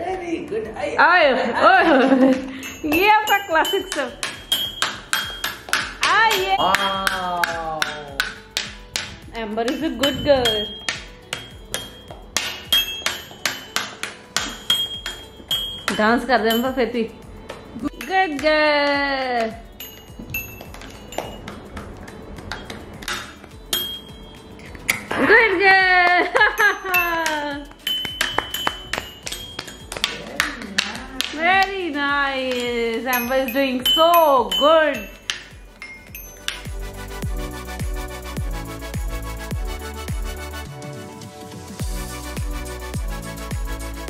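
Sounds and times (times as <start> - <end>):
toy xylophone taps: 2.2 - 18.7, 19.3 - 21.9, 26.2 - 36.8.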